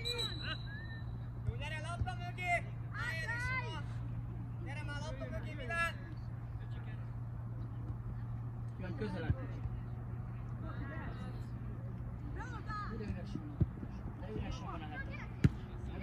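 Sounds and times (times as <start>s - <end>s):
steady low hum: 0.0s - 16.0s
ball being kicked thuds: 15.4s - 15.7s.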